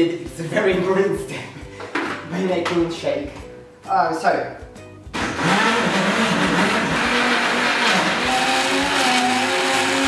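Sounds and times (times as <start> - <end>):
blender motor churning: 5.2 - 10.0.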